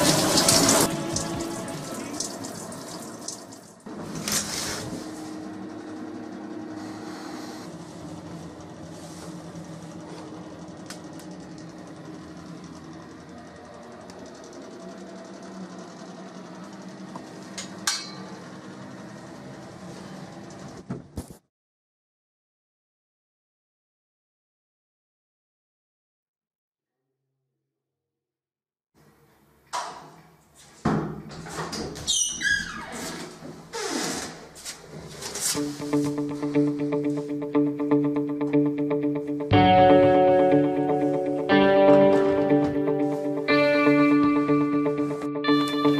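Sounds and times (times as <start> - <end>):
plucked guitar music: 35.6 - 45.9.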